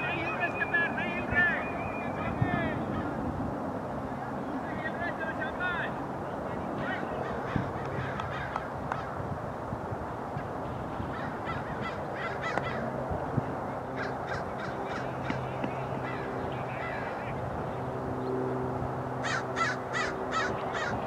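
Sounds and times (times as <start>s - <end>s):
steady low hum: 0.0s - 21.0s
harsh caw-like bird calls: 2.9s - 3.2s, 6.8s - 9.2s, 11.0s - 12.9s, 14.0s - 17.4s, 19.2s - 21.0s.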